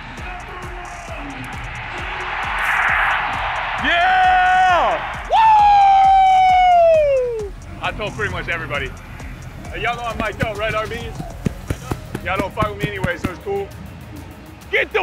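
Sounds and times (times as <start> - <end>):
stadium crowd cheering: 0.0 - 7.6
amplified announcer calling: 3.8 - 7.5.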